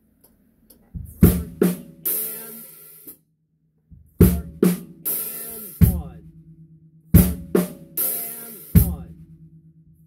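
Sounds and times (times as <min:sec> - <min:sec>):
drum strokes: 0:01.0 - 0:02.6, 0:04.0 - 0:06.3, 0:07.2 - 0:09.3.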